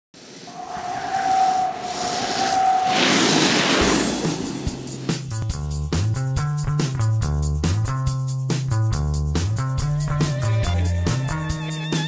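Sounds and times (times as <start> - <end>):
snowboards hissing on snow: 1.8 - 5.2.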